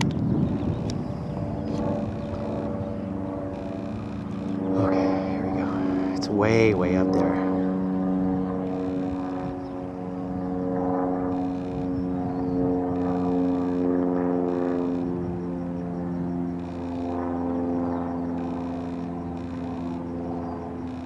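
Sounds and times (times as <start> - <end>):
engine drone: 0.0 - 21.0.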